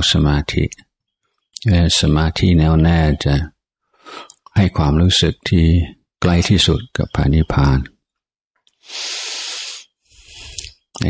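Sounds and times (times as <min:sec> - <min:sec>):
man breathing: 0:03.8 - 0:04.4, 0:08.7 - 0:10.9.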